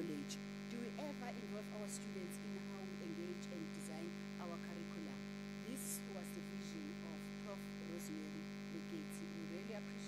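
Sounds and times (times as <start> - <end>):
electrical hum: 0.0 - 10.0
woman speaking: 0.0 - 10.0.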